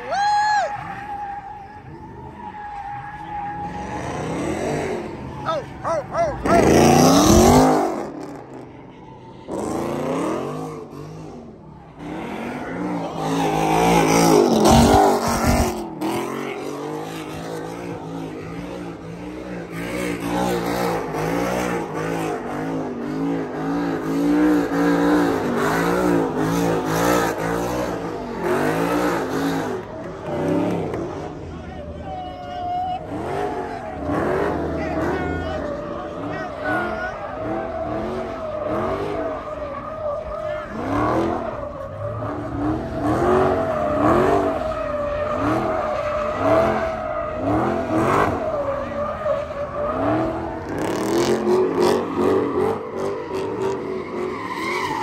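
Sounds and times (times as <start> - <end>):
car engines revving: 0.0 - 55.0.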